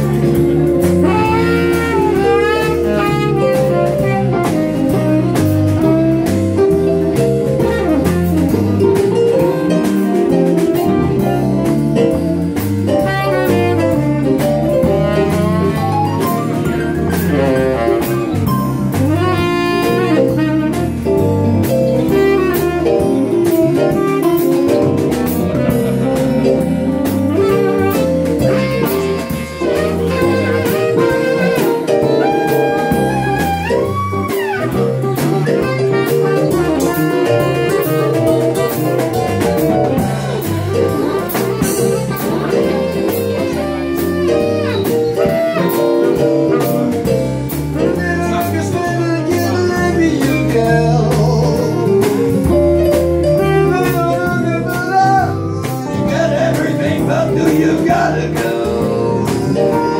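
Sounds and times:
bass guitar: 0:00.0 - 0:59.9
drum kit: 0:00.0 - 0:59.9
electric guitar: 0:00.0 - 0:59.9
saxophone melody: 0:00.0 - 0:59.9.

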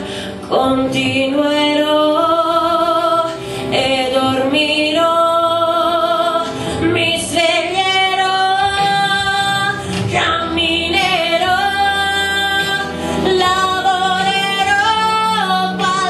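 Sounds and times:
woman singing a ballad: 0:00.0 - 0:16.0.

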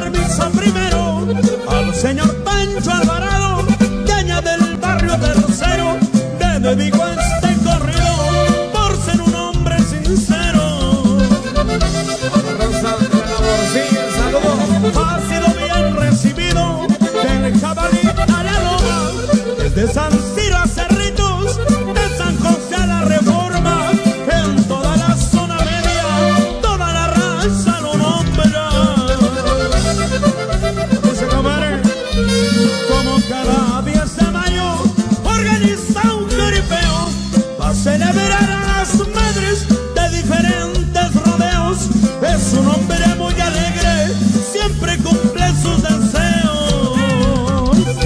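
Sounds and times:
accordion playing melody: 0:00.0 - 0:48.0
bass and steady beat: 0:00.0 - 0:48.0.

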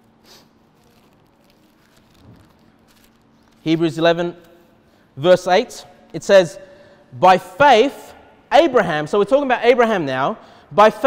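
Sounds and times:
pages rustling: 0:00.6 - 0:04.7.

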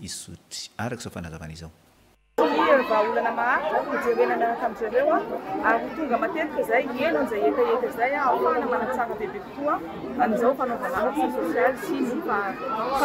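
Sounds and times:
crowd chatter: 0:02.4 - 0:13.0.

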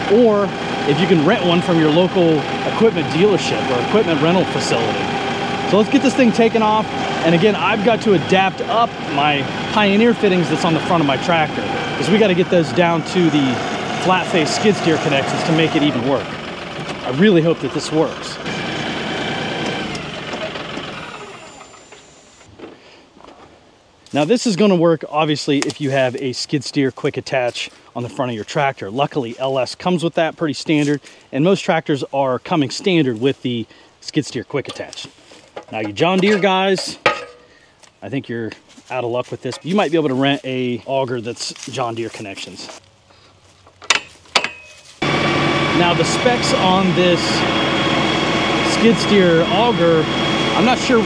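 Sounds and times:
tractor diesel engine running: 0:00.0 - 0:22.5, 0:38.4 - 0:51.0.

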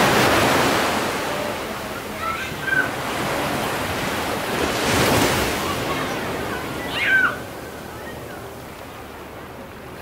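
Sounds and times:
ocean waves surging: 0:00.0 - 0:10.0.

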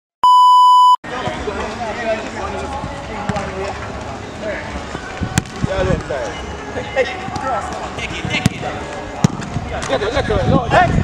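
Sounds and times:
test tone beep: 0:00.2 - 0:01.0
players calling and shouting: 0:01.1 - 0:10.3
ball kicks: 0:08.4 - 0:10.0.

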